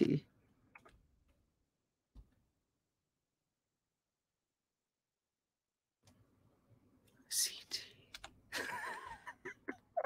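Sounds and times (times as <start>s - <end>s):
woman whispering: 7.3s - 8.1s.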